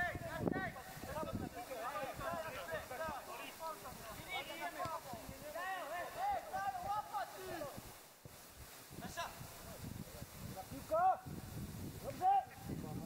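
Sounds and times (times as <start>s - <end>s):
outdoor background noise: 0.0s - 13.0s
players shouting: 1.7s - 7.8s.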